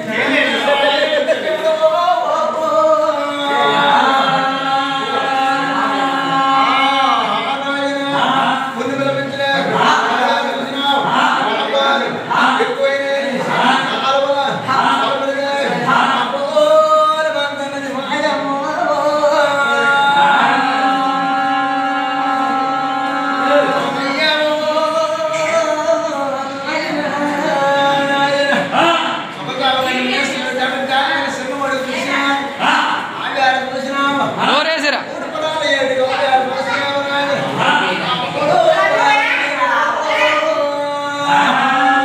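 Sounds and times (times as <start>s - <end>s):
man singing unaccompanied: 0.0s - 42.0s.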